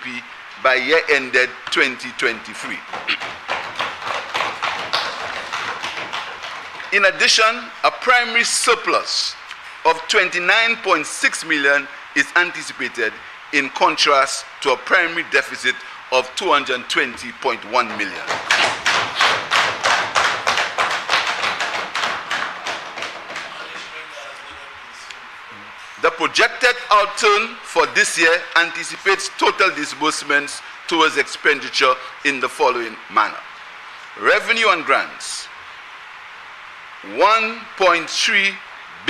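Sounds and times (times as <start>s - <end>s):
hands banging on wooden desks: 2.8s - 7.0s, 17.9s - 23.9s.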